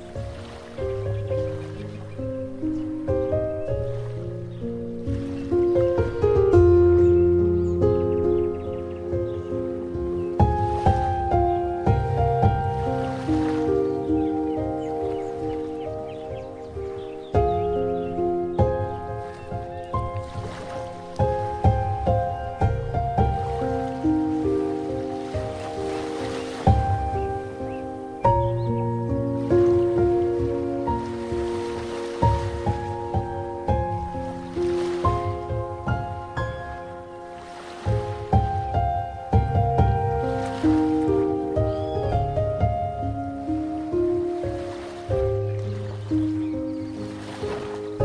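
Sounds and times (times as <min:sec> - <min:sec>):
ocean waves: 0:00.0 - 0:48.0
solo piano piece: 0:00.0 - 0:48.0.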